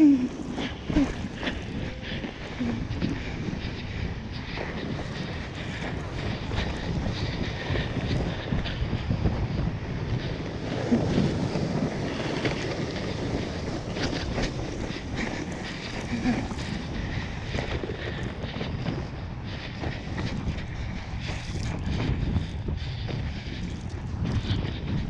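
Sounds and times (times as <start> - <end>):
sled runners scraping over snow: 0.0 - 25.0
wind buffeting microphone: 0.0 - 25.0.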